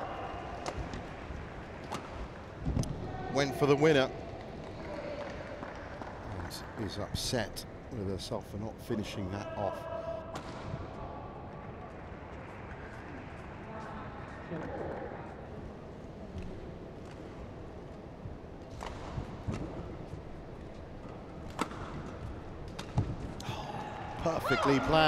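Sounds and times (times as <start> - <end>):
rackets hitting shuttlecock: 1.8 - 2.4, 21.5 - 23.2.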